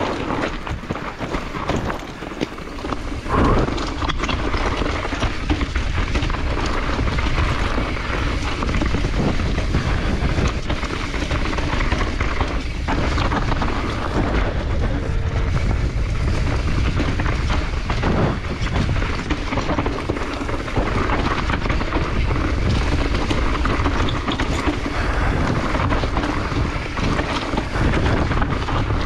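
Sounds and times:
bike rattling over bumps: 0.0s - 29.0s
tyres rolling over dirt trail: 0.0s - 29.0s
wind buffeting microphone: 0.0s - 29.0s.

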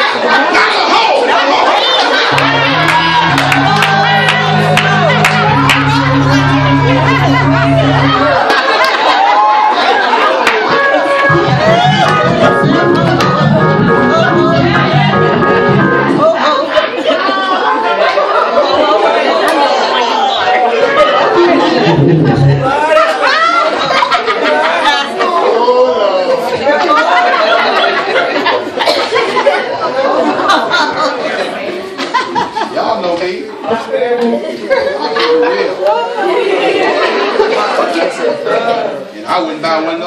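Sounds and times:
people talking: 0.0s - 9.2s, 10.0s - 40.0s
congregation chatter: 0.0s - 40.0s.

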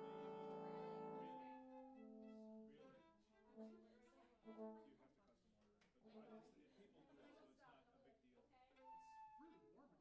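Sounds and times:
bowed string instrument notes: 0.0s - 2.5s.

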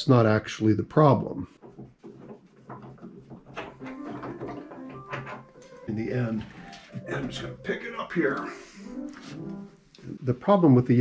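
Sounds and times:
wooden clicks and knocks: 1.5s - 7.4s
piano action sliding out: 2.4s - 7.8s, 8.8s - 9.8s
faint piano tones: 3.5s - 11.0s.

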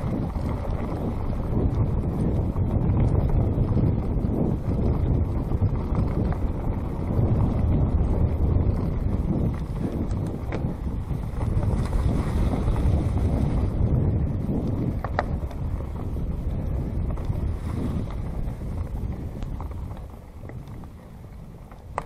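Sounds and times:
bike tyres rolling on dirt trail: 0.0s - 22.0s
wind buffeting microphone: 0.0s - 22.0s.

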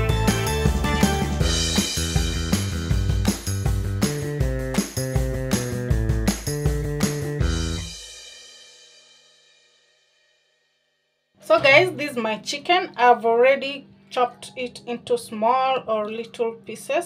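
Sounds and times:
music with drum beat and cymbals: 0.0s - 9.9s.

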